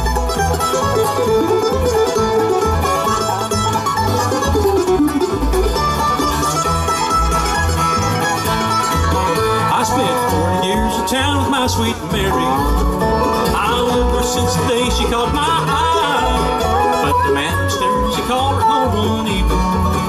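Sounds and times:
acoustic guitar: 0:00.0 - 0:20.0
banjo: 0:00.0 - 0:20.0
picked mandolin: 0:00.0 - 0:20.0
upright bass thumping: 0:00.0 - 0:20.0.

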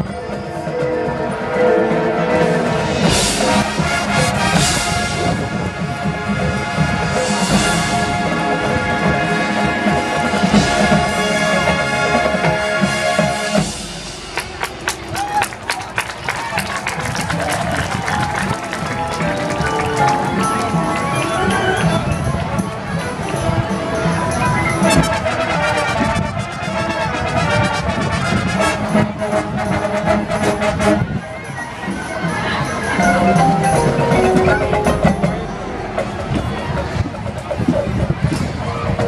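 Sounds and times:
marching band playing: 0:00.0 - 0:38.3.

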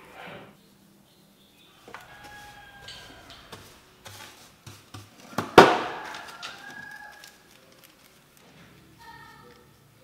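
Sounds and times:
brush sweeping metal filings: 0:02.0 - 0:05.3.

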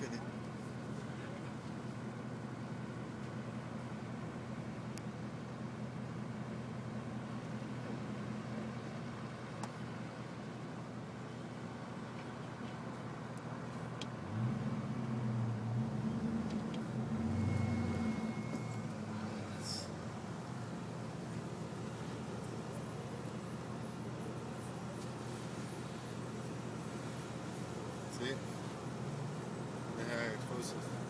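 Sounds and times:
car engine idling and revving: 0:00.0 - 0:31.0.

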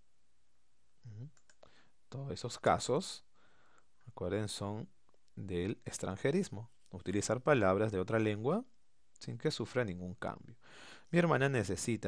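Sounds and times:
computer mouse clicks: 0:01.3 - 0:01.7.

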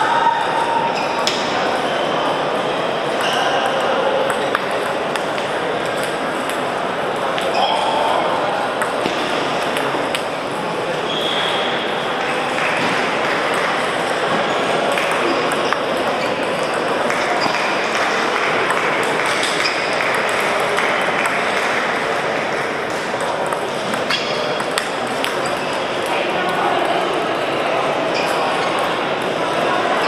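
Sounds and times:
murmur of many voices: 0:00.0 - 0:30.0
table tennis balls clicking: 0:03.1 - 0:07.5, 0:08.7 - 0:10.3, 0:12.4 - 0:27.0.

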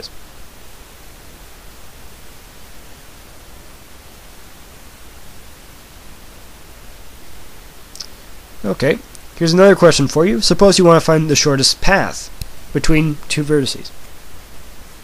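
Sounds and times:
microphone hiss: 0:00.0 - 0:15.0.

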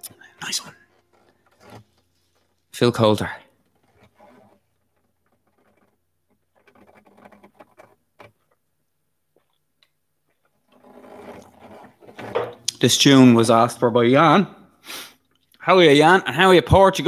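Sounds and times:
quiet rustle: 0:00.0 - 0:13.1.

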